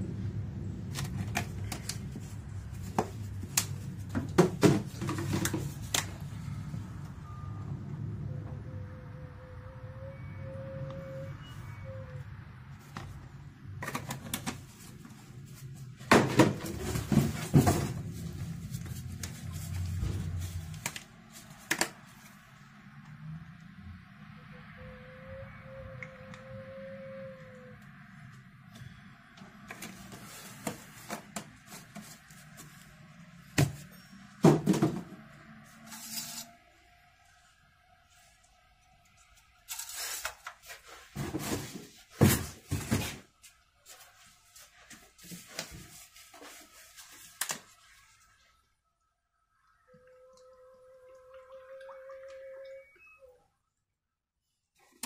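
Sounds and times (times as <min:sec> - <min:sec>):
bottles knocking and thunking: 0:33.6 - 0:35.2.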